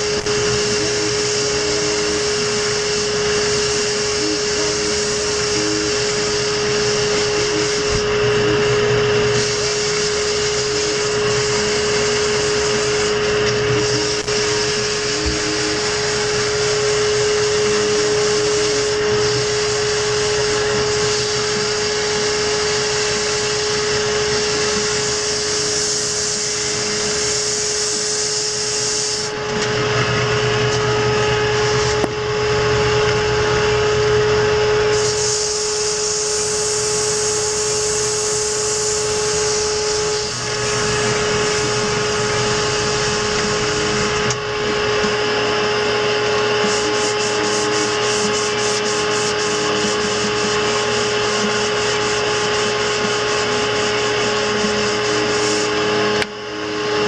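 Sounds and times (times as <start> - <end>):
turning tool cutting wood: 0.0 - 32.1, 34.8 - 57.0
wood lathe motor hum: 0.0 - 57.0.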